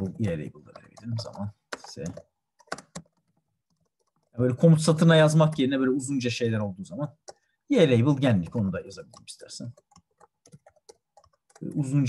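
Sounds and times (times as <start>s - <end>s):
computer keyboard typing: 0.0s - 6.2s, 7.0s - 12.0s.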